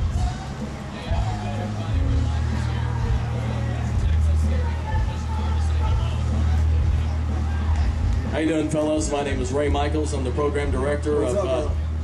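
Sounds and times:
faint voices chattering: 0.0 - 12.0.

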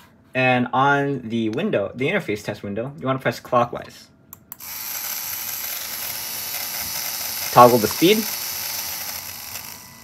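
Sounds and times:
small electric motor whirring: 4.6 - 10.0.

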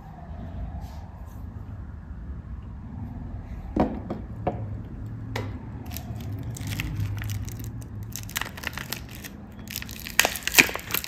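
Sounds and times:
wrapper crinkling: 5.9 - 11.0.

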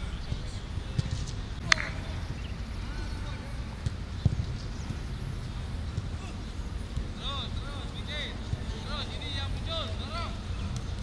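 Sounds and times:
football kicked on grass: 3.8 - 7.2.

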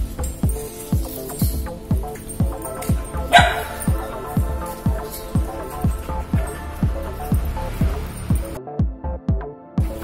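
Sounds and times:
background music with steady beat: 0.0 - 10.0
dog barking: 3.0 - 6.7.

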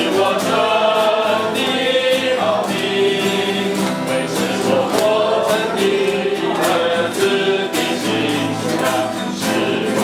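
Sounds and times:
group singing worship song: 0.0 - 10.0
strummed acoustic guitars: 0.0 - 10.0.

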